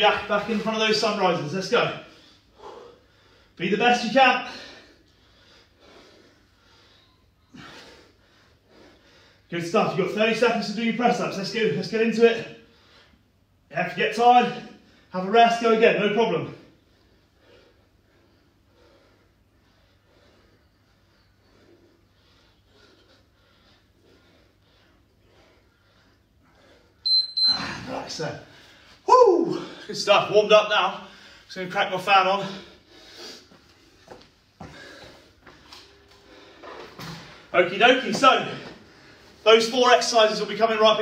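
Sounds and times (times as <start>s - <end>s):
low room hum: 0.0s - 41.0s
man breathing: 2.0s - 3.6s, 4.5s - 9.5s, 12.6s - 13.7s, 16.6s - 27.0s, 27.8s - 30.0s, 31.0s - 31.5s, 32.4s - 37.6s, 38.4s - 39.5s
electric fan running: 34.8s - 39.3s.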